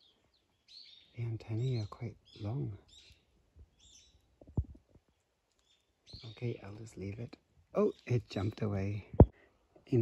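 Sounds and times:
faint high bird chirp: 0.0 - 7.2, 7.8 - 9.0
soft low thumps: 9.0 - 9.3.

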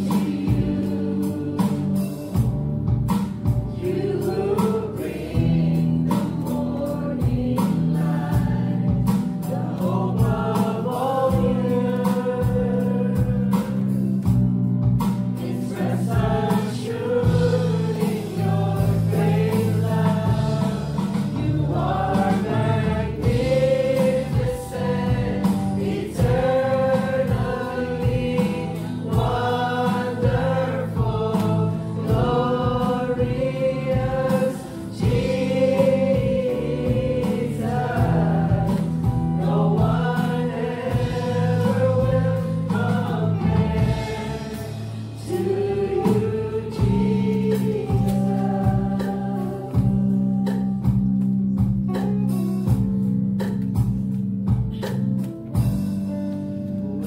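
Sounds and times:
singers singing together: 0.0 - 14.4, 15.2 - 51.0
acoustic and electric guitar: 0.0 - 57.0
drums: 0.0 - 57.0
keyboard: 0.0 - 57.0.

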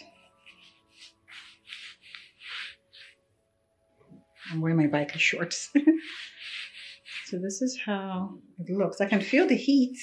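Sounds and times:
hand rubbing fabric strap: 0.0 - 3.3, 4.2 - 7.8
faint background music: 0.0 - 10.0.

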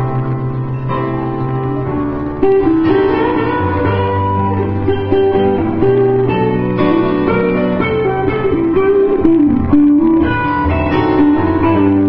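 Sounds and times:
electric guitars melody: 0.0 - 12.0
live rock band playing: 0.0 - 12.0.

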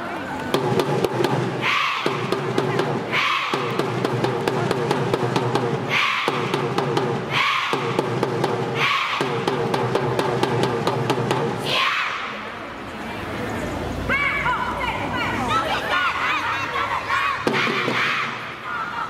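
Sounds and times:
steady drumbeat: 0.5 - 11.7
loud unison shouts: 1.5 - 2.4, 3.0 - 3.9, 5.8 - 8.1, 8.7 - 9.5, 11.6 - 12.5, 14.1 - 19.0
girls chanting together: 1.5 - 4.0, 5.8 - 9.6, 11.6 - 12.4, 15.4 - 19.0.

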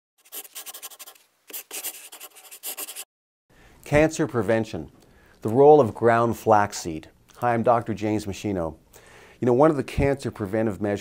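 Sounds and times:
scribbling on paper: 0.2 - 3.1.

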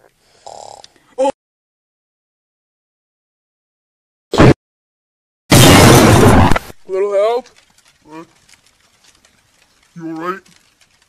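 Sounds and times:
loud crash: 5.5 - 6.8.

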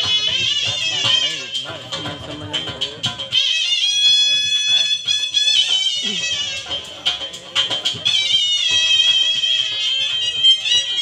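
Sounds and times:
dhol drum strokes: 0.0 - 11.0
shehnai melody: 0.0 - 11.0.

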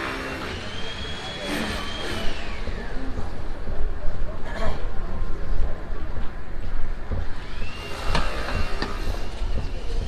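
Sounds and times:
high motor whine falling in pitch: 0.0 - 3.8, 7.3 - 10.0
low street rumble: 0.0 - 10.0.

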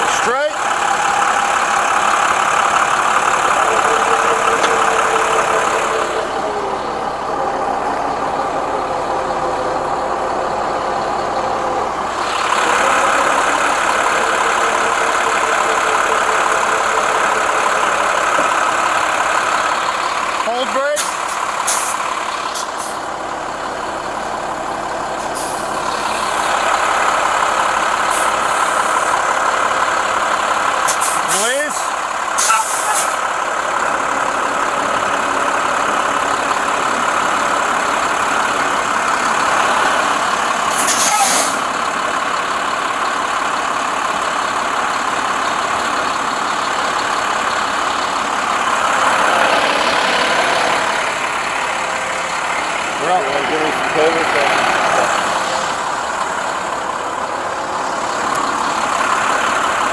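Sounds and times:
hydraulic winch whines: 0.0 - 23.5, 25.1 - 41.8
truck engine running: 0.0 - 59.9
hissing bursts: 21.0 - 23.1, 40.7 - 41.7.

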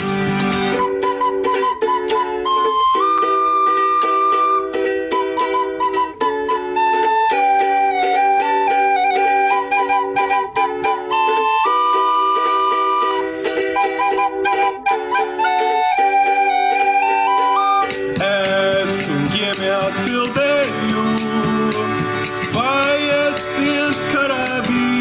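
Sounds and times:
recorders playing folk tune: 0.0 - 25.0
strummed ukulele: 0.0 - 25.0.

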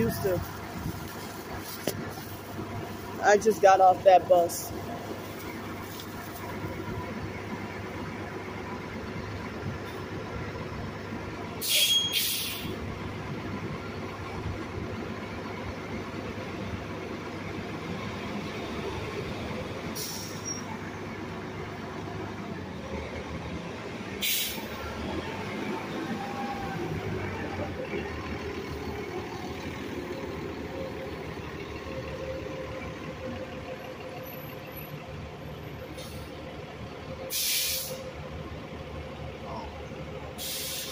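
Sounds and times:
bus engine idling: 0.0 - 40.9
pneumatic air hisses: 11.6 - 12.7, 20.0 - 20.5, 24.2 - 24.7, 37.3 - 38.1, 40.4 - 40.9.

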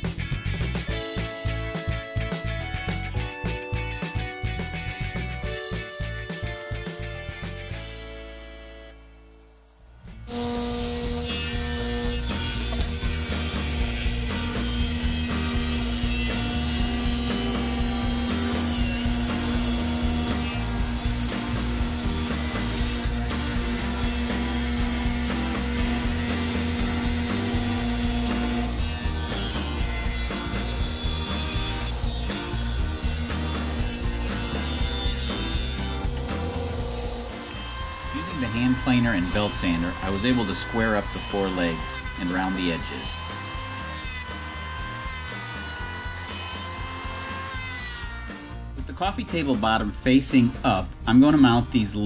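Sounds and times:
table saw cutting wood: 10.2 - 52.0
steady hum: 31.7 - 40.2.

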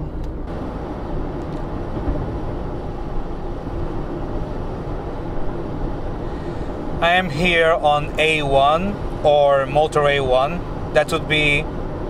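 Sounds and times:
car cabin road and engine noise: 0.0 - 12.0.

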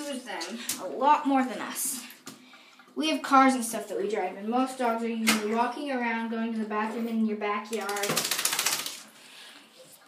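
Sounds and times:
wet dog fur rattling: 7.8 - 9.0.

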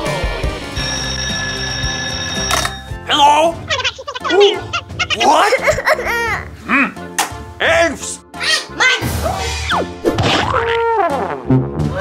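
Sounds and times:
background music: 0.0 - 12.0
telephone ringing: 0.7 - 3.1.

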